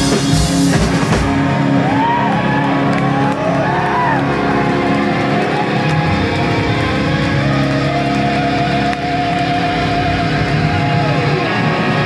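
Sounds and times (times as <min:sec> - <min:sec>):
electric guitars sustained chords: 0:00.0 - 0:12.0.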